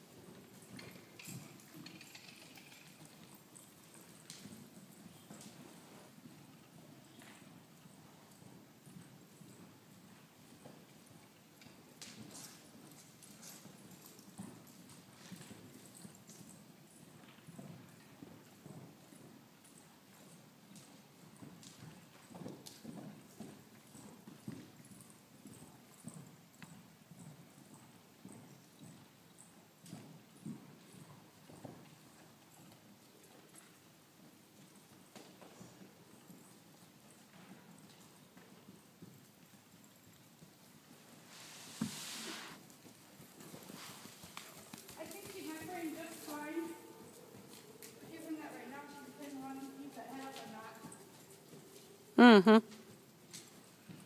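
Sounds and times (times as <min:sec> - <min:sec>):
horse hooves cantering on sand: 0:00.0 - 0:54.0
short hissing rush: 0:41.3 - 0:42.6.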